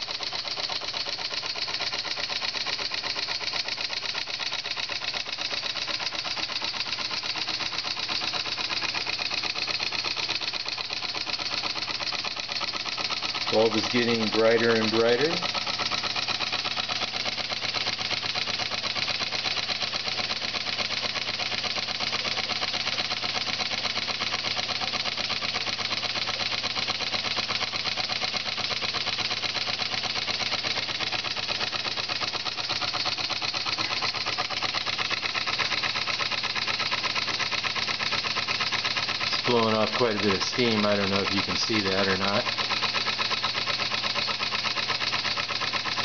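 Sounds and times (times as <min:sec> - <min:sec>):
model steam engine running fast: 0:00.0 - 0:46.0.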